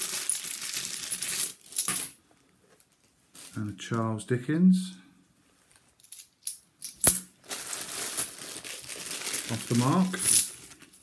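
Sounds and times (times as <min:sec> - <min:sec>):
plastic bags crinkling: 0:07.3 - 0:11.0.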